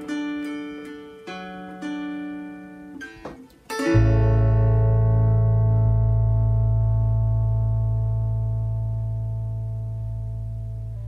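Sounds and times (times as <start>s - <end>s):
deep bass note: 4.0s - 11.0s.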